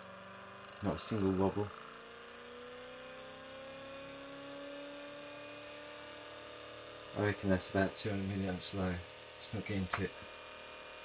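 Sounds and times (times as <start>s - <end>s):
electrical hum-whine: 0.0s - 11.0s.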